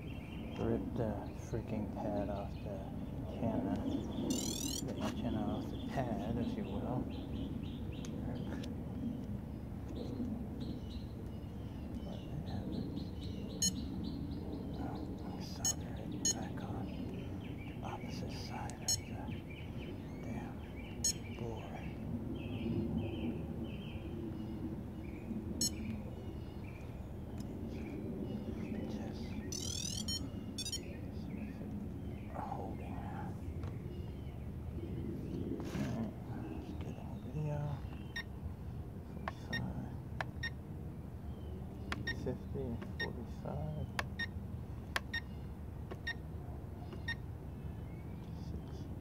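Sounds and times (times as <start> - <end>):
small birds chirping: 0.0 - 49.0.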